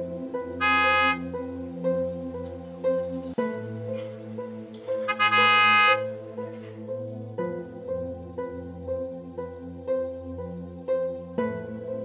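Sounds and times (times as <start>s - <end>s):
soft background music: 0.0s - 12.0s
car horn honk: 0.6s - 1.4s, 5.0s - 6.2s.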